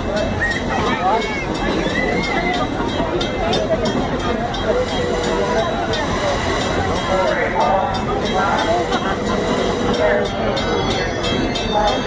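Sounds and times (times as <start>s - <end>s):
crowd talking: 0.0s - 12.0s
train wheels rumbling on rails: 0.0s - 12.0s.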